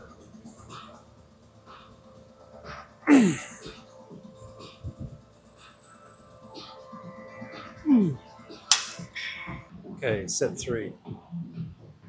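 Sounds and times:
groan falling in pitch: 0:03.1 - 0:03.6, 0:07.9 - 0:08.2
sharp clack: 0:08.7 - 0:09.0.

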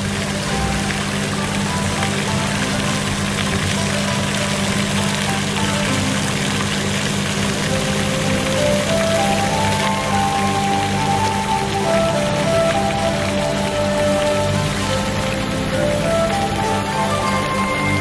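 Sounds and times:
fountain water splashing: 0:00.0 - 0:18.0
music playing: 0:00.0 - 0:18.0.

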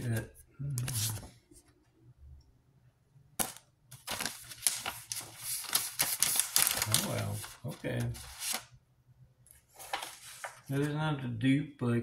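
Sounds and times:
paper cards clicking and rustling: 0:00.0 - 0:01.3, 0:03.4 - 0:08.7, 0:09.8 - 0:10.9.

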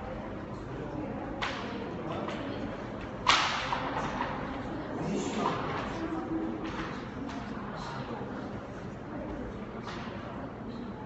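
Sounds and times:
sharp crack: 0:03.3 - 0:03.9.

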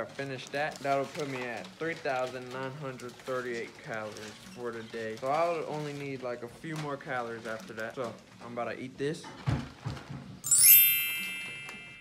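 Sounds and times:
bright chime sound effect: 0:10.5 - 0:12.0.

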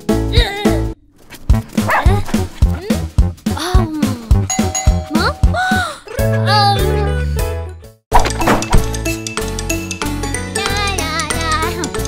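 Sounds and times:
cartoon music with steady beat: 0:00.0 - 0:12.0.

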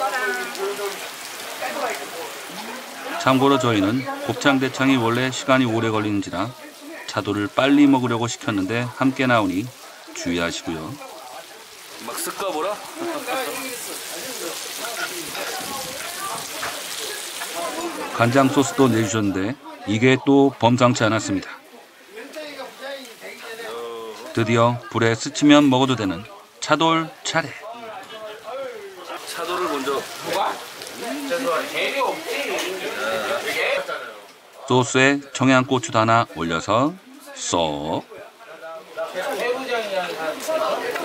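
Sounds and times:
food sizzling in pan: 0:00.0 - 0:34.7
voices talking: 0:00.0 - 0:41.0
meat sizzling in a pan: 0:02.6 - 0:19.2.

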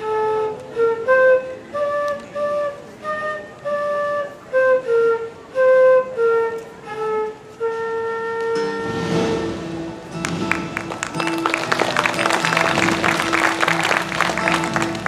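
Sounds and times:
flute slow melody: 0:00.0 - 0:10.2
mandolin: 0:08.6 - 0:15.0.

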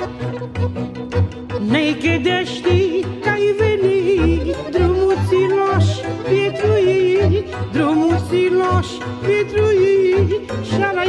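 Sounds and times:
folk music with pulsing bass: 0:00.0 - 0:11.0.

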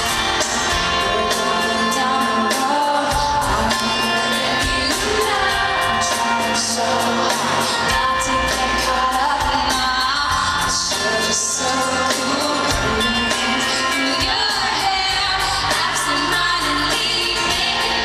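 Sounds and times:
band playing: 0:00.0 - 0:18.0
woman singing into a microphone: 0:00.0 - 0:18.0.

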